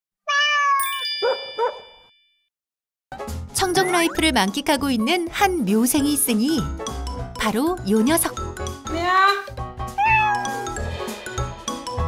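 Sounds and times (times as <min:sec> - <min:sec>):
cat meow: 0:00.2 - 0:00.8, 0:10.0 - 0:10.8.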